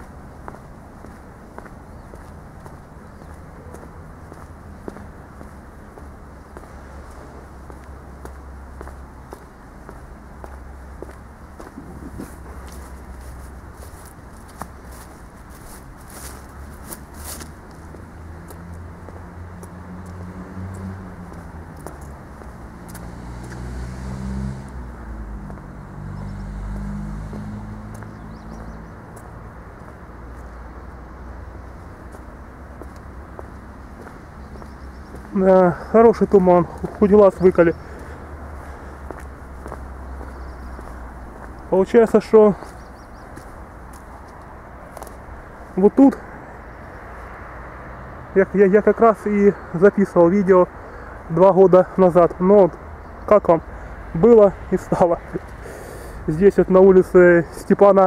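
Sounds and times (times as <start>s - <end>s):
footsteps on paving stones: 0.0s - 23.8s, 24.7s - 58.0s
outdoor background noise: 0.0s - 58.0s
vehicle passing: 0.0s - 58.0s.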